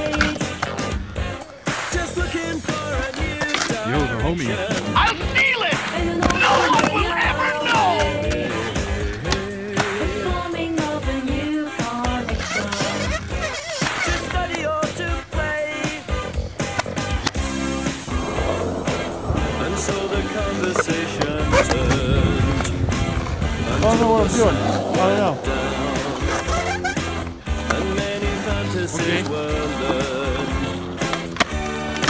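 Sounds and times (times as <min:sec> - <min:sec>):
background music with a beat: 0:00.0 - 0:32.0
skateboard wheels rolling on concrete: 0:00.0 - 0:32.0
music track: 0:16.8 - 0:30.7.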